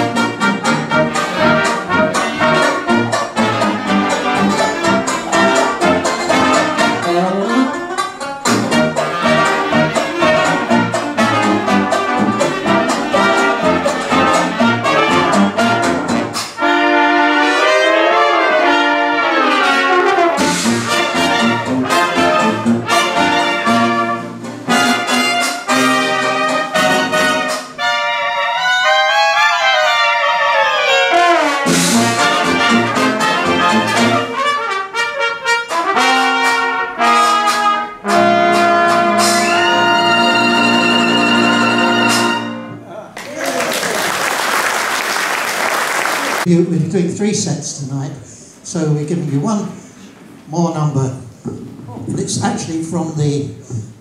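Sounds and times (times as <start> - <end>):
jazz band playing: 0.0 - 42.9.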